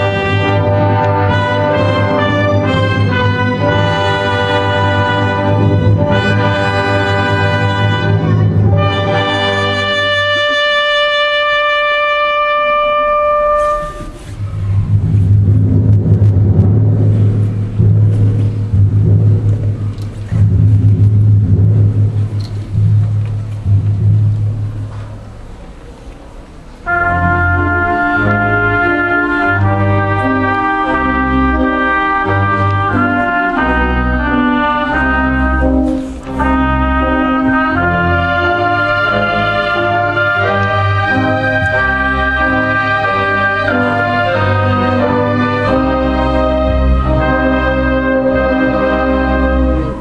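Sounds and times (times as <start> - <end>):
brass playing a melody: 0.0 - 21.8, 26.8 - 50.0
low pulsing bass passage: 14.4 - 25.6.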